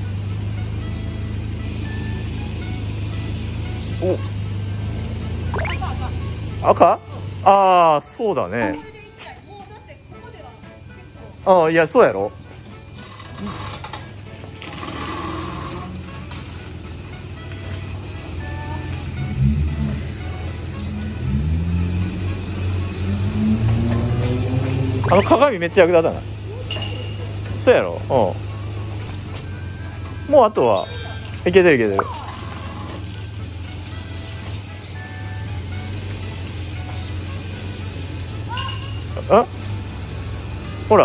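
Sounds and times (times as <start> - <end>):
car engine running at low speed: 0.0 - 8.9, 15.0 - 30.6
background music: 0.0 - 41.0.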